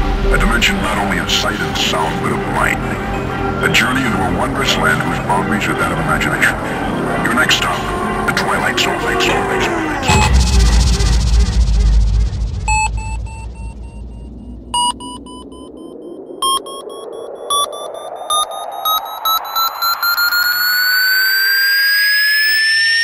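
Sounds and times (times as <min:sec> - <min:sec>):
deep bass rumble: 0:00.0 - 0:03.6, 0:06.5 - 0:17.0
rising synth tone: 0:06.5 - 0:23.0
short synth stabs: 0:10.0 - 0:16.8.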